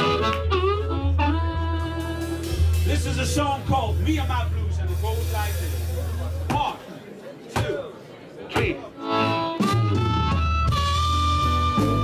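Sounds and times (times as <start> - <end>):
harmonica long notes: 0.0 - 3.8, 9.0 - 12.0
bass guitar: 0.0 - 6.6, 9.1 - 12.0
drums: 0.0 - 6.9, 9.4 - 12.0.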